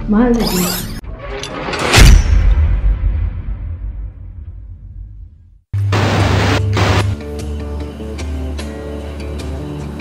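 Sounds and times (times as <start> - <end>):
noisy sound effect burst: 5.8 - 7.2.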